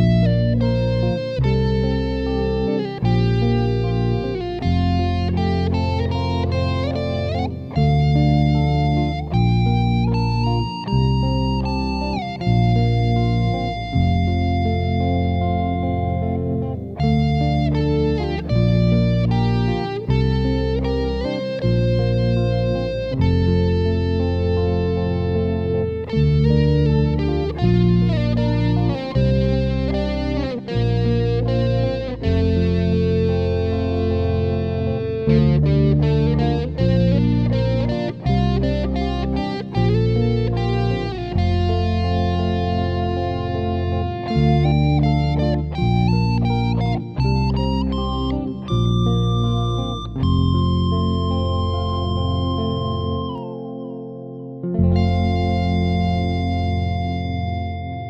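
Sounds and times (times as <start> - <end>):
bass guitar: 0.0 - 58.0
electric lead guitar: 0.0 - 58.0.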